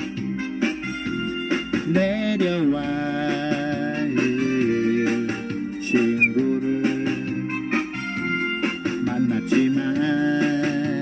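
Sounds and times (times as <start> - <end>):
karaoke instrumental with beat: 0.0 - 11.0.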